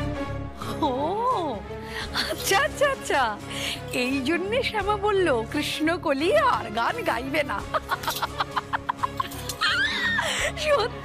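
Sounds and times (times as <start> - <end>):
background music: 0.0 - 11.0
woman giggling: 7.7 - 11.0.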